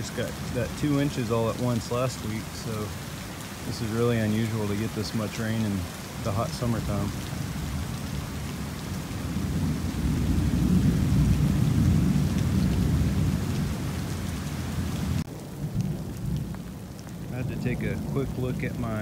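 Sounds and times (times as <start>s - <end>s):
heavy rain falling: 0.0s - 19.0s
low roll of thunder: 6.4s - 19.0s.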